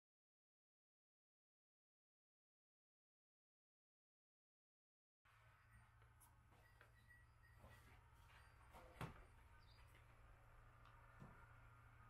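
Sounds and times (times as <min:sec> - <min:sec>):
faint room hum: 0:05.3 - 0:12.0
faint high chirp: 0:05.6 - 0:10.0.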